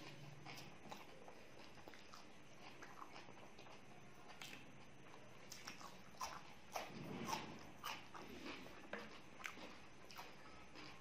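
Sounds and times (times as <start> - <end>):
vegetable stick crunching: 5.4 - 11.0.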